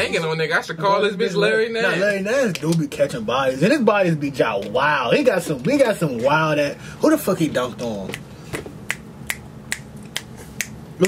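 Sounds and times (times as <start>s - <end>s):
fingers snapping: 8.9s - 10.8s.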